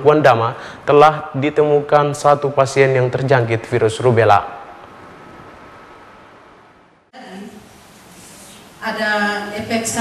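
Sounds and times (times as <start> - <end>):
room tone hiss: 0.0 - 10.0.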